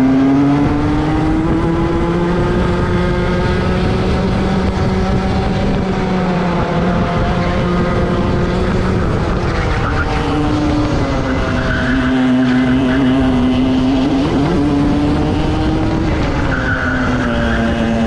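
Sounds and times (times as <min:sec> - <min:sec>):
two-stroke kart engines racing: 0:00.0 - 0:18.0.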